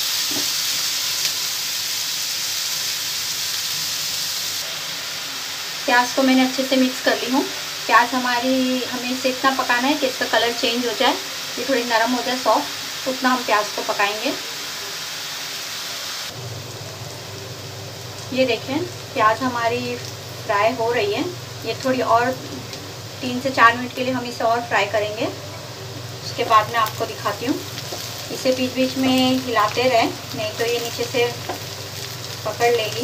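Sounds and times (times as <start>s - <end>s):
onions sizzling in hot oil: 0.0s - 33.0s
low steady hum: 16.4s - 33.0s.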